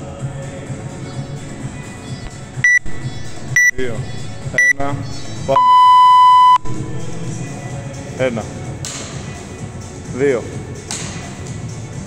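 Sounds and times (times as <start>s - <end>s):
long low timer beep: 2.6s - 2.8s, 5.6s - 6.8s
short high timer beeps: 2.6s - 2.8s, 5.6s - 6.7s.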